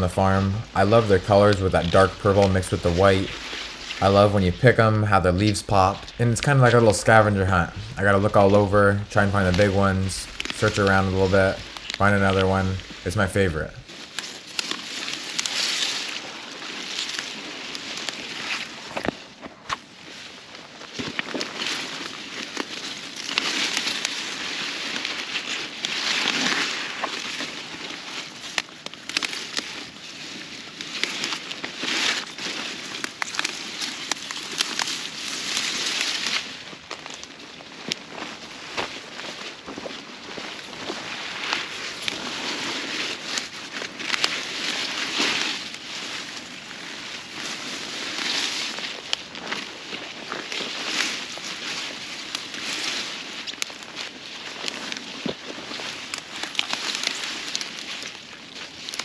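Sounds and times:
leaves and stems rustling: 0.0s - 59.0s
stems snapping: 7.6s - 13.1s, 14.1s - 16.2s, 24.9s - 29.9s, 30.8s - 46.4s, 51.8s - 59.0s.

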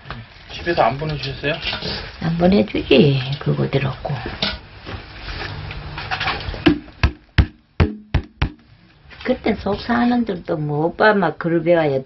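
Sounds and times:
knocks on kitchenware: 6.6s - 8.6s.

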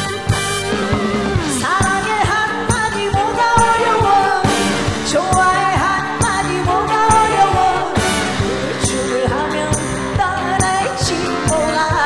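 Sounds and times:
live band with drum beat: 0.0s - 12.0s
woman singing into a microphone: 1.5s - 12.0s.

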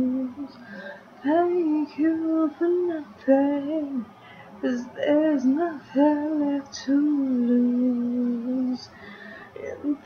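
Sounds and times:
young female voice singing: 0.0s - 0.6s, 1.2s - 10.0s.

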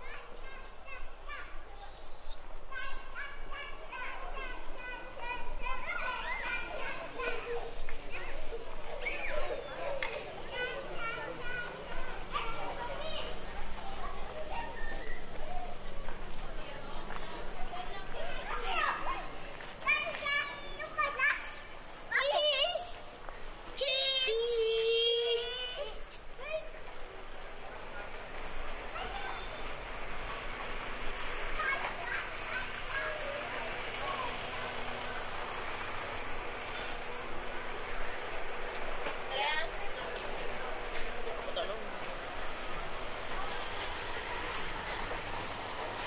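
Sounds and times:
faint voices: 0.0s - 46.0s
young children calling and chattering: 0.0s - 46.0s.

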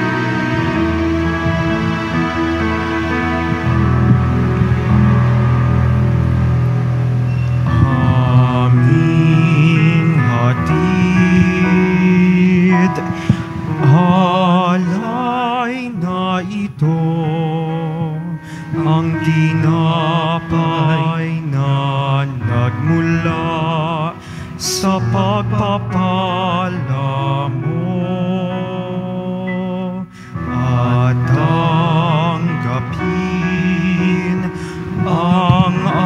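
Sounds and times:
church music with held chords: 0.0s - 36.0s
person singing hymn with vibrato: 0.0s - 36.0s.

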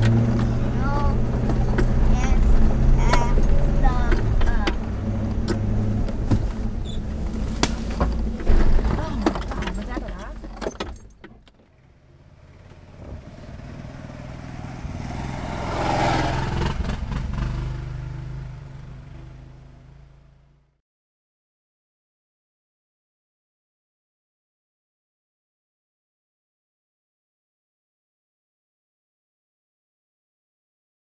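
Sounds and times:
engine running at slow crawl: 0.0s - 10.1s, 11.7s - 20.7s
body and suspension rattles: 0.0s - 13.5s.

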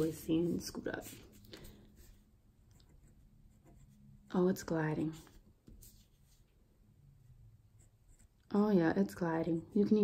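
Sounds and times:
pen scratching on paper: 2.8s - 4.0s, 7.8s - 8.4s.

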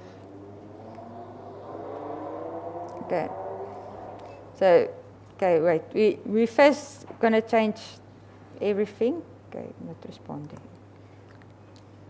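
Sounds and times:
person humming rising in pitch: 0.0s - 4.5s
steady electrical hum: 0.0s - 12.0s.

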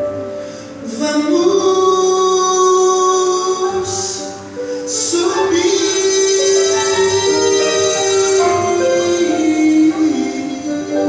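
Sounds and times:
instrumental gospel backing music: 0.0s - 11.0s.

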